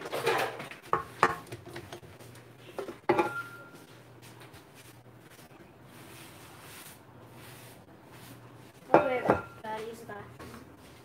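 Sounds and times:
metal bowl clanking: 3.0s - 3.7s, 8.9s - 9.6s
spatula knocking on metal bowl: 8.9s - 9.6s.

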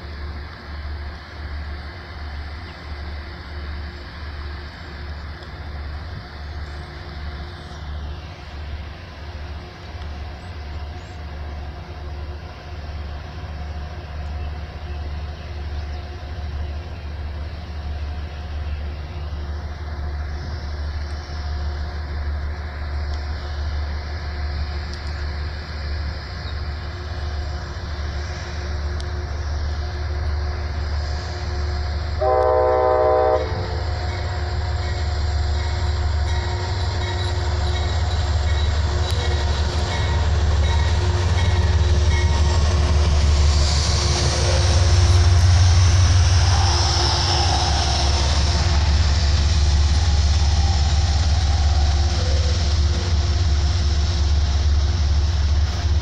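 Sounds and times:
diesel locomotive engine rumbling: 0.0s - 56.0s
train horn blast: 29.0s - 35.0s.

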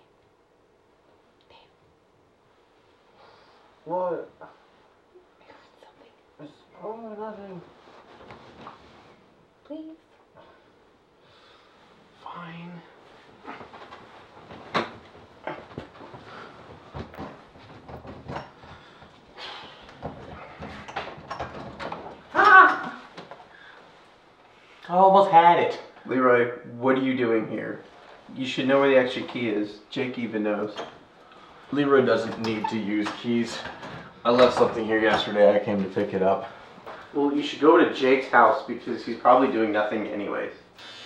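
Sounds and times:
soft hiss like a whisper: 1.4s - 2.0s, 2.6s - 14.0s.

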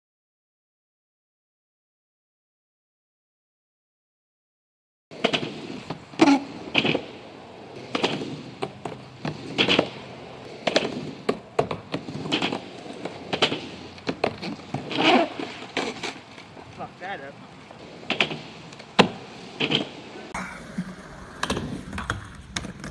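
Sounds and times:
skateboard wheels rolling on asphalt: 5.1s - 22.9s
skateboard clacking on ground: 5.2s - 22.9s.

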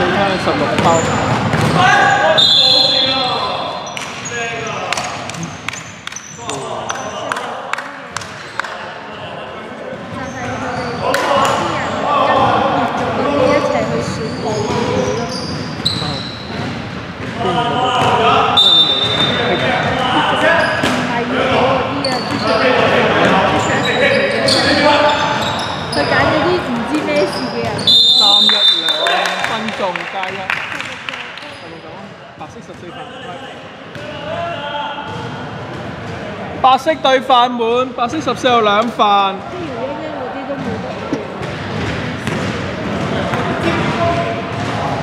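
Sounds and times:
players calling out: 0.0s - 7.6s, 17.3s - 31.7s.

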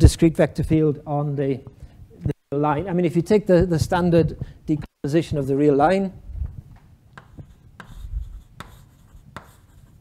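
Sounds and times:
chalk tapping and scraping blackboard: 7.2s - 10.0s.

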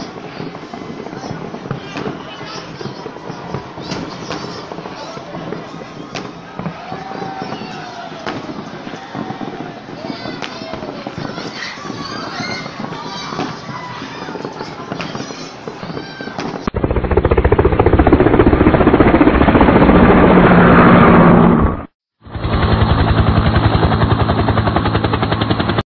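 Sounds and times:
people's voices: 0.0s - 16.7s
fireworks crackling: 0.0s - 17.8s
loud rapid pulsing sound: 16.6s - 25.8s.

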